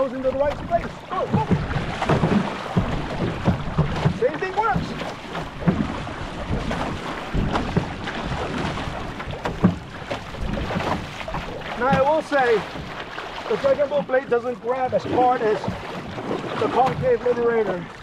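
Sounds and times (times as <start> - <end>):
wind buffeting microphone: 0.0 - 12.9
low thumps: 0.0 - 13.0
paddle strokes splashing: 0.0 - 18.0
water rushing along hull: 0.0 - 18.0.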